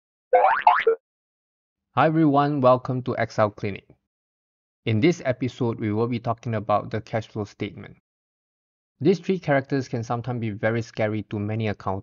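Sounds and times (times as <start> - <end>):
cartoon boing sound effect: 0.4 - 1.0.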